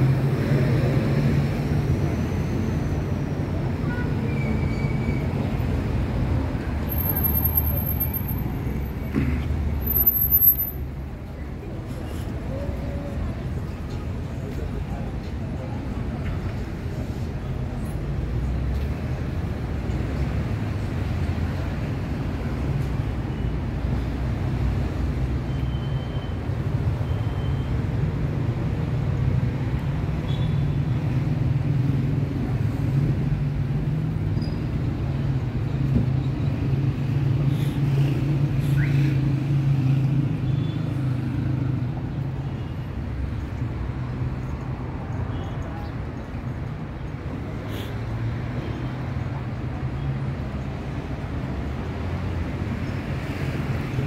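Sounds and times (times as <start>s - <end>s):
road traffic: 0.0s - 54.0s.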